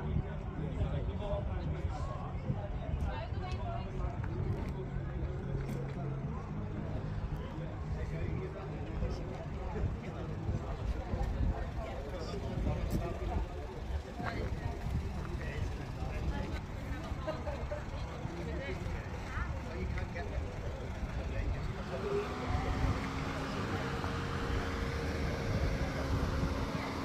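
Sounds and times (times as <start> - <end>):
faint background voices: 0.0 - 27.0
vehicle engine revving: 21.5 - 27.0.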